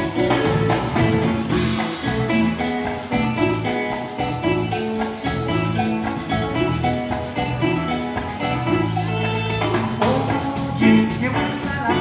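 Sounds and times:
barrel drum: 0:00.0 - 0:12.0
congas: 0:00.0 - 0:12.0
drum kit: 0:00.0 - 0:12.0
electric guitar: 0:00.0 - 0:12.0
latin dance band playing: 0:00.0 - 0:12.0.

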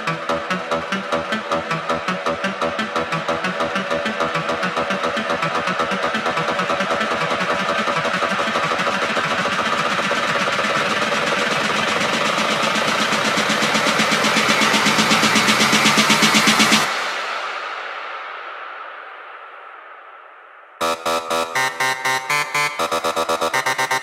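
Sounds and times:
pulsing buzzy techno synth: 0:00.0 - 0:16.8, 0:20.8 - 0:24.0.

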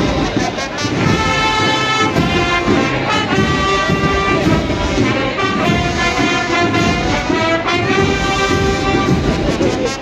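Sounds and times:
brass marching band playing: 0:00.0 - 0:10.0.

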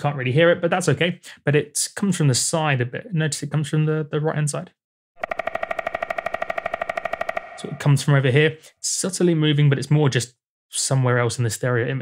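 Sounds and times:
synthesized woodpecker pecking: 0:05.2 - 0:08.3.

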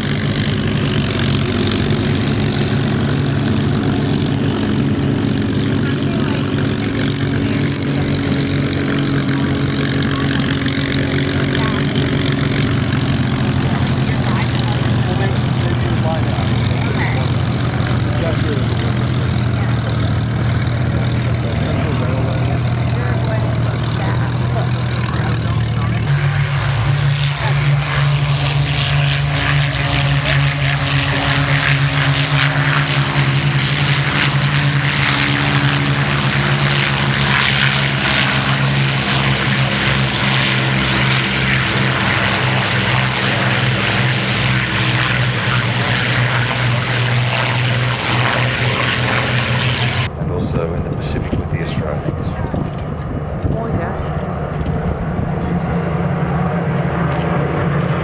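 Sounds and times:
propeller aircraft passing overhead: 0:00.0 - 0:58.0
propeller plane engine taxiing: 0:00.0 - 0:58.0.

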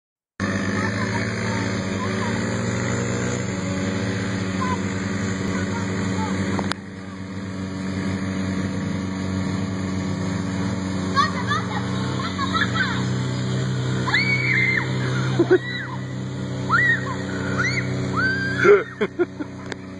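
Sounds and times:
atv engine running: 0:00.4 - 0:19.9
high-pitched voices calling out: 0:11.1 - 0:13.2.

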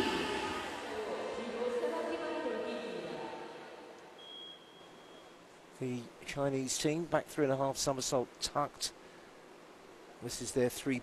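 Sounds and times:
person's voice echoing: 0:00.0 - 0:03.7.

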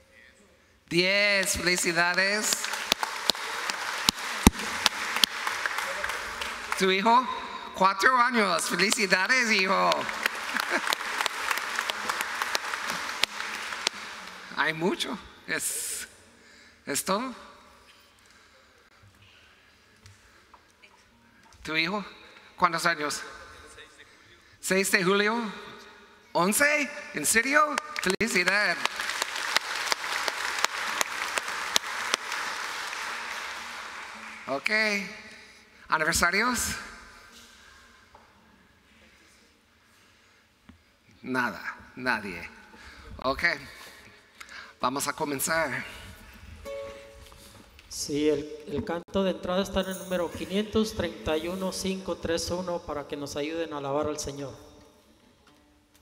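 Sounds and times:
congregation applauding: 0:01.3 - 0:14.8, 0:27.2 - 0:35.4.

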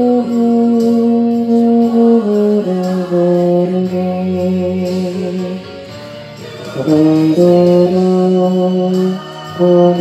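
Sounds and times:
euphonium melody: 0:00.0 - 0:10.0
recorded accompaniment: 0:00.0 - 0:10.0.

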